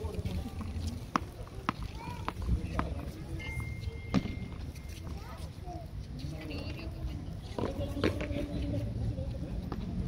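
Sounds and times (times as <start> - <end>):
thin steady tone: 3.0 - 5.9.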